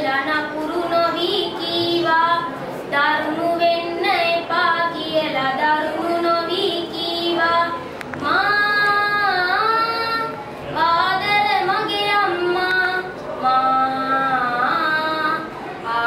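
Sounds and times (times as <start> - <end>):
boy singing unaccompanied: 0.0 - 16.0.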